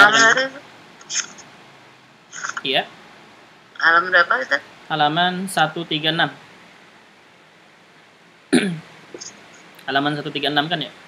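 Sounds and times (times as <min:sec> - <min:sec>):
man speaking: 0:00.0 - 0:00.4, 0:02.6 - 0:02.9, 0:04.9 - 0:06.4, 0:08.6 - 0:08.8, 0:09.8 - 0:11.0
man clearing throat: 0:08.5 - 0:08.8.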